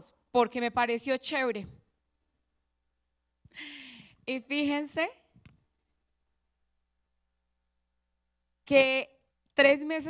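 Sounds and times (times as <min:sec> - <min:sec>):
woman speaking: 0:00.4 - 0:01.8, 0:04.3 - 0:05.3, 0:08.7 - 0:10.0.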